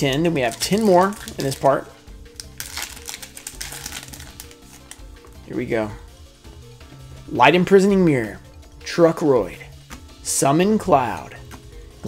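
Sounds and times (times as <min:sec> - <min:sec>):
background music with held notes: 0:00.0 - 0:12.0
foil wrapper crinkling: 0:00.4 - 0:01.7, 0:02.3 - 0:05.0.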